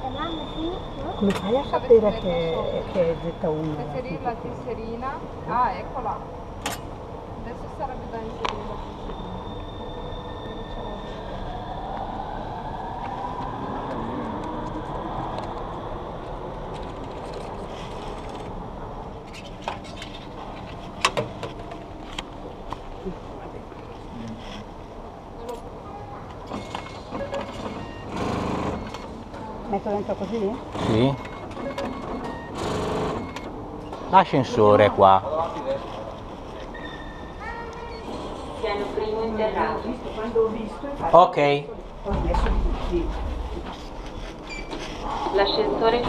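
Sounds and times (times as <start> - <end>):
underground station hum: 0.0 - 46.0
whine rising in pitch: 8.6 - 16.7.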